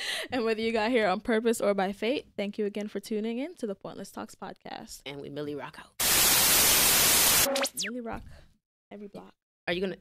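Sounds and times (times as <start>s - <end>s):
white-noise static burst: 6.0s - 7.8s
rising and falling tone sweep: 6.3s - 7.9s.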